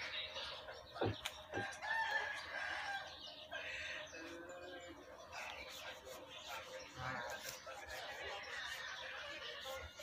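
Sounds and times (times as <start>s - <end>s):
rooster crowing: 1.6s - 3.2s.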